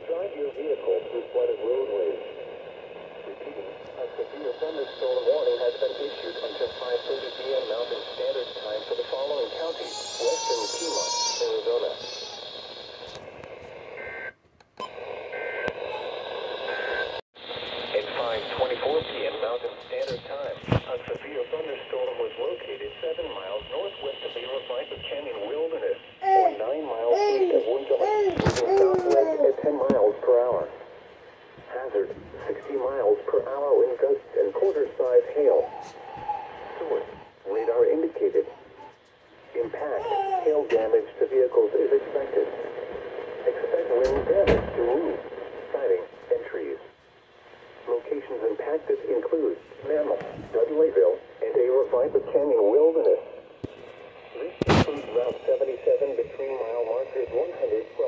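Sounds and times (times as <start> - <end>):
broadcast voice through small speaker: 17.9 - 30.8.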